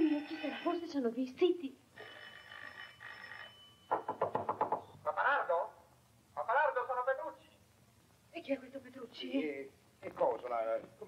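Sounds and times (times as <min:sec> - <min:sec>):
electric doorbell ringing: 0:02.0 - 0:04.0.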